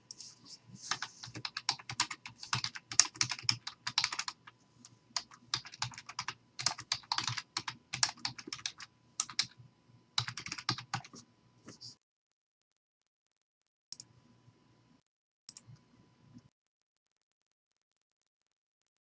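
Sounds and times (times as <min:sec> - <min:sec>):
typing on computer keyboard: 0:00.9 - 0:04.5, 0:05.2 - 0:09.5, 0:10.2 - 0:11.2.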